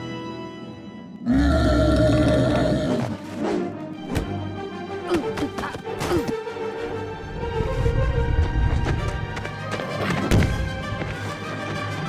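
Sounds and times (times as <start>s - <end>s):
eerie film score: 0.0s - 12.0s
deep creature roar: 1.2s - 3.2s.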